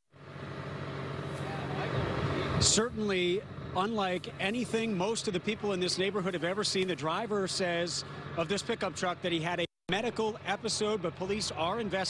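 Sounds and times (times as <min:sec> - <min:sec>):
low engine-like hum: 0:00.1 - 0:12.0.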